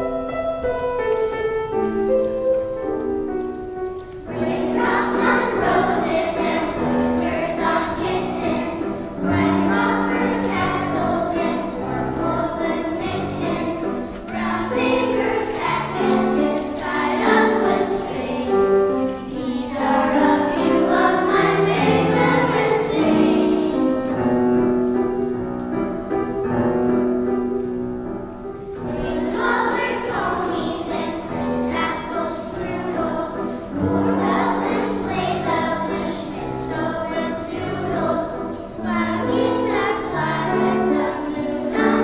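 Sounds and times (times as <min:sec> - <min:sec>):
children's choir singing: 0:00.0 - 0:42.0
piano accompaniment: 0:00.0 - 0:42.0.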